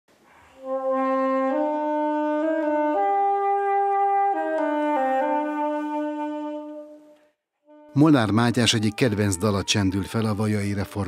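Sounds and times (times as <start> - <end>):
clarinet playing slow song: 0.5 - 11.0
man's voice: 7.9 - 11.0.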